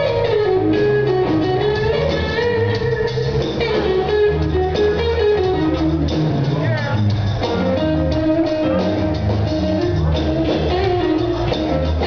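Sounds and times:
bass notes: 0.0s - 12.0s
drum kit: 0.0s - 12.0s
electric guitar lead: 0.0s - 12.0s.

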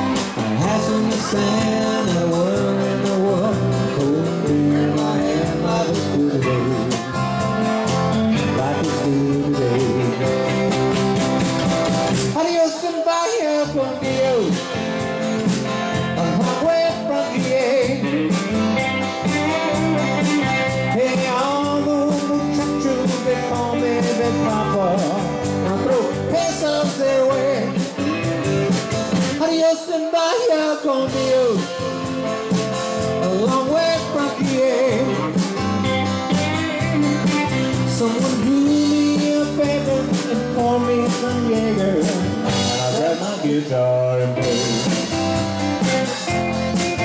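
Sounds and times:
bending melody line: 0.0s - 12.7s, 13.4s - 29.6s, 31.1s - 47.0s
electric bass: 0.0s - 29.6s, 30.9s - 47.0s
acoustic and electric guitars: 0.0s - 47.0s
drum kit: 0.0s - 47.0s.

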